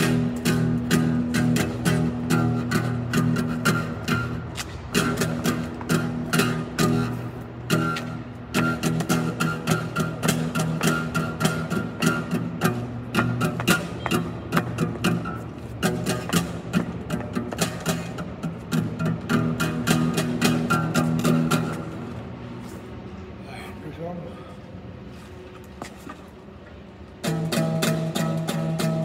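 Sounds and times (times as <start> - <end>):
guitar strummed quickly: 27.2 - 29.0.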